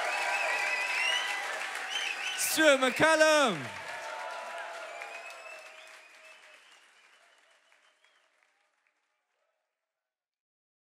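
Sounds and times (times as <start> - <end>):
cheers: 0.0 - 8.1
audience applauding: 0.0 - 9.1.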